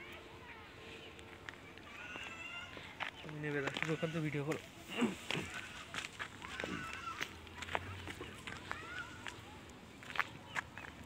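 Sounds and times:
footsteps on dry grass: 0.9s - 11.0s.

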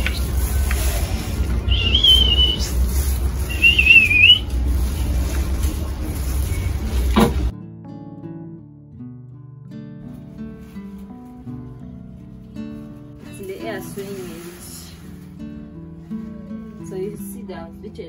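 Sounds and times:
short wavering high whistles: 1.7s - 2.8s, 3.5s - 4.4s
plucked guitar background music: 7.5s - 18.0s.

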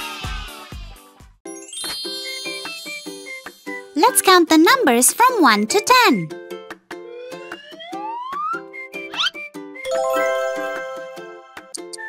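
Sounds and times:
music: 0.0s - 12.0s
bell-like chime jingle: 1.5s - 4.0s, 9.9s - 11.8s.

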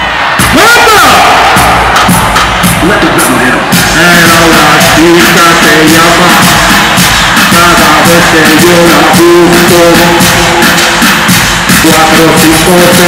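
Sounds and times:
crowd shouting and cheering: 0.0s - 13.0s
live concert music with steady beat: 0.0s - 13.0s.

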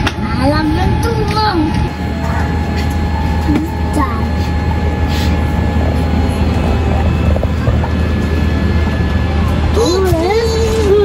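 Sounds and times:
airliner cabin drone: 0.0s - 11.0s.

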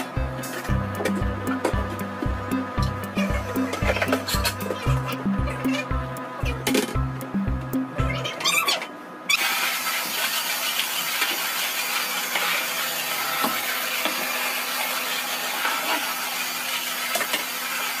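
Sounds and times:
backing music with low beat: 0.0s - 8.3s
stick vacuum cleaner running: 0.0s - 8.5s, 9.3s - 18.0s.

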